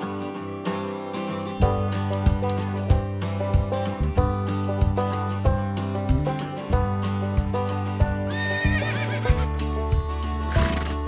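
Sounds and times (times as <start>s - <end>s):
background music: 0.0s - 11.0s
horse whinnying: 8.3s - 9.5s, 10.5s - 11.0s.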